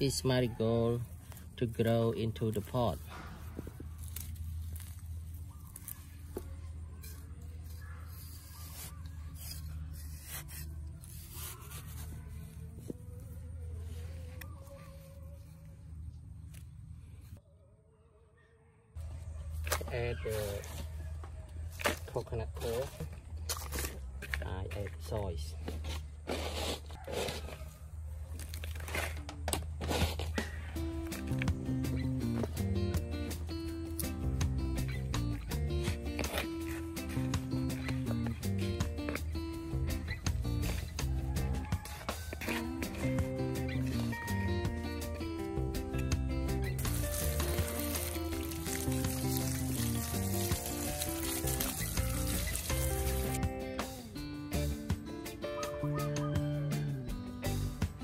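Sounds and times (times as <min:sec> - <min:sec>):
hand tool scraping soil: 0:00.0 - 0:15.5, 0:19.6 - 0:21.0, 0:21.7 - 0:32.6, 0:34.9 - 0:39.4, 0:40.0 - 0:45.3, 0:45.9 - 0:53.4
background music with held notes: 0:30.4 - 0:58.0.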